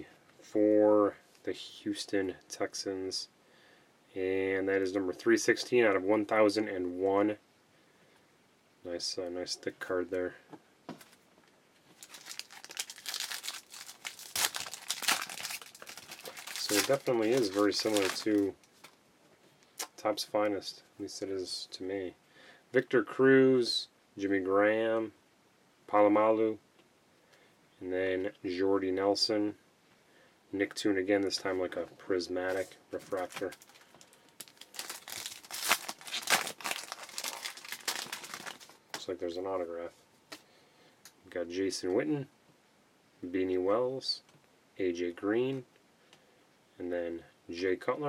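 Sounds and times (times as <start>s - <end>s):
foil wrapper tearing and crinkling: 12.0s - 19.0s, 32.5s - 38.8s.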